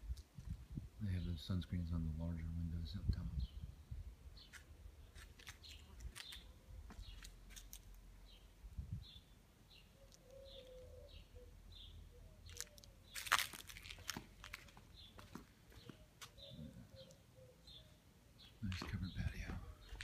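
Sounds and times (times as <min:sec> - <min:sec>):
small bird chirping: 0:04.4 - 0:20.0.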